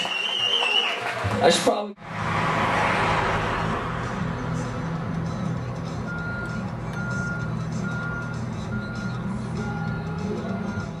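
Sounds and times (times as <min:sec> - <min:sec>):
engine humming: 0:02.0 - 0:11.0
vehicle backup alarm beeping: 0:06.0 - 0:11.0.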